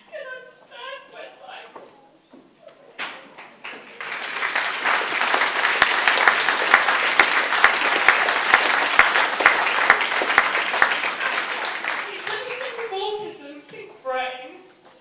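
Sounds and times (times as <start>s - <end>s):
audience applauding: 3.3s - 13.4s.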